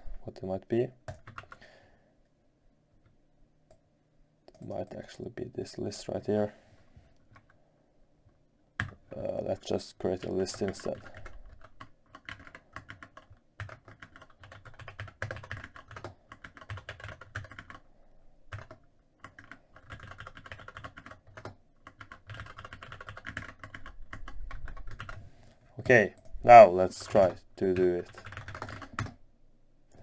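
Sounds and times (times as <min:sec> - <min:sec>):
typing on computer keyboard: 0:01.1 - 0:01.6, 0:10.2 - 0:17.8, 0:18.5 - 0:25.2, 0:28.0 - 0:29.2.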